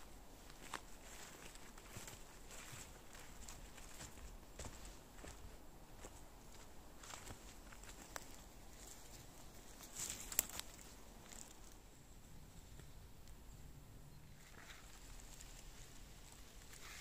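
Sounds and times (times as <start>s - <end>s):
footsteps crunching on twigs: 0.4s - 11.8s.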